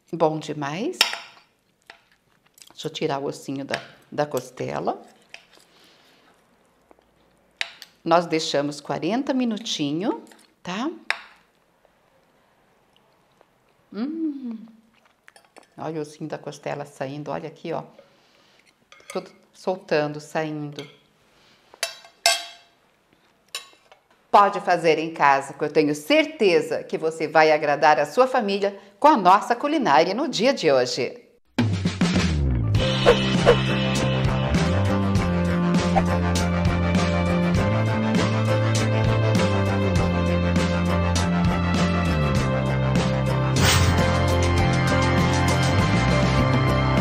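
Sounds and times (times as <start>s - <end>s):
cutlery clinking on plate: 21.8s - 22.7s, 23.5s - 24.0s.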